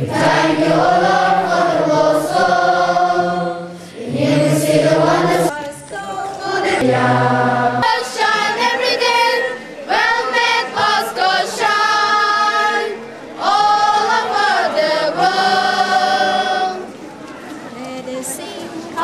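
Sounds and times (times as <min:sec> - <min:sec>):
choir singing a hymn: 0:00.0 - 0:16.9.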